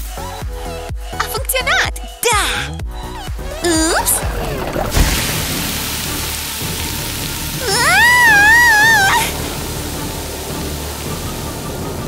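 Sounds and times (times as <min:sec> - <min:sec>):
woman screaming: 0:03.6 - 0:04.2, 0:07.6 - 0:09.4.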